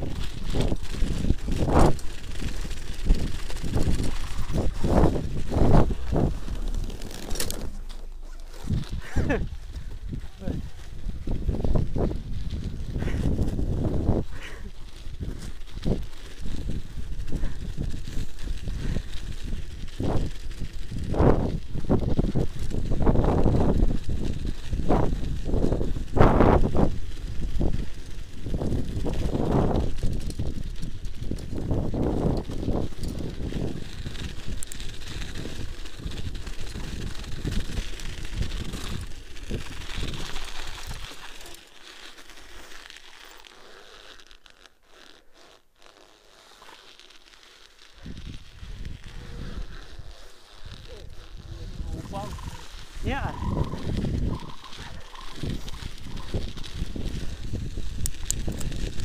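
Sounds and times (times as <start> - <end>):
wind buffeting microphone: 0.0 - 41.5, 48.0 - 59.0
tyres crunching on snow: 0.0 - 59.0.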